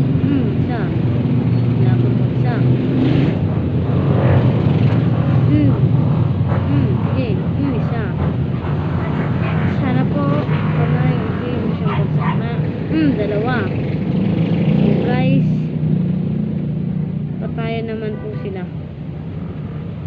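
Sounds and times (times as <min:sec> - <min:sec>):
voices talking and calling: 0:00.0 - 0:02.8, 0:05.3 - 0:14.1.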